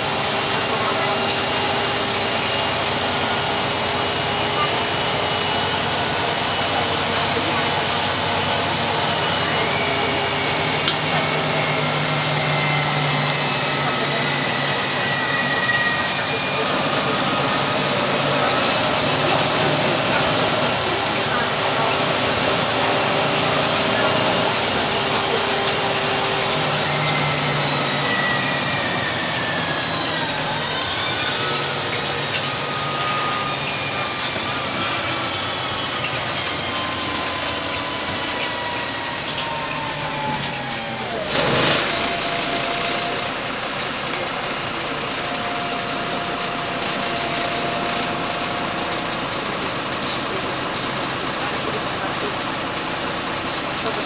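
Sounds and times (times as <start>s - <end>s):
bus engine running: 0.0s - 54.0s
whining tones falling in pitch: 1.6s - 49.5s.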